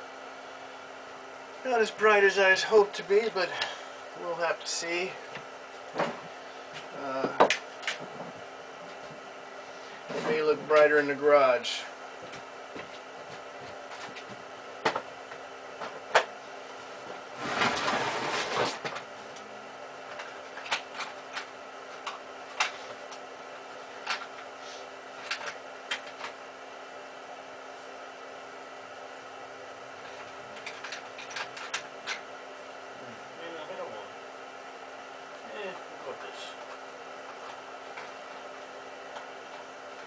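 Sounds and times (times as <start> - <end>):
low electrical hum: 0.0 - 40.0
scraping rustle: 17.4 - 18.9.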